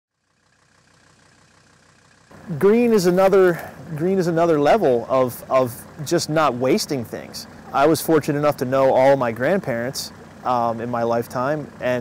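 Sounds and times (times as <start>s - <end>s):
diesel engine running: 0.2s - 12.0s.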